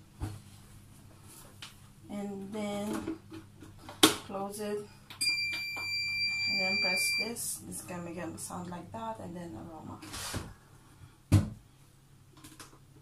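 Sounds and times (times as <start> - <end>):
high-pitched appliance beep: 5.2 - 7.4.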